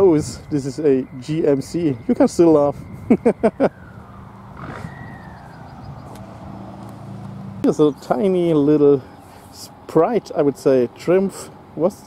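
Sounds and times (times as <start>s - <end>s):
faint drawn-out whistling tone: 3.8s - 6.1s.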